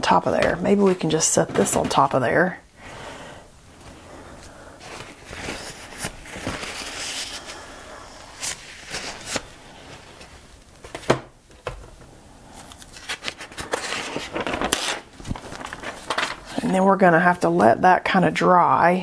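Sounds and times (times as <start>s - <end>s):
paper and board rustling: 0.0s - 2.2s, 4.8s - 7.7s, 8.3s - 11.9s, 12.6s - 16.6s.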